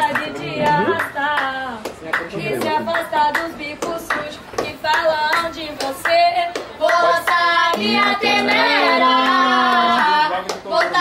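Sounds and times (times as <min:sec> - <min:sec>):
sharp claps: 0:00.0 - 0:11.0
girls singing unaccompanied: 0:02.4 - 0:11.0.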